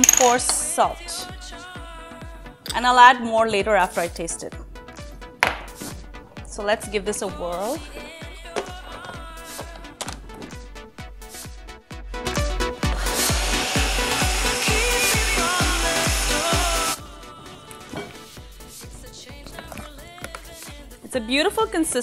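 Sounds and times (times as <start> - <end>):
background music with beat: 0.0 - 2.9, 3.6 - 22.0
blender running: 12.8 - 17.0.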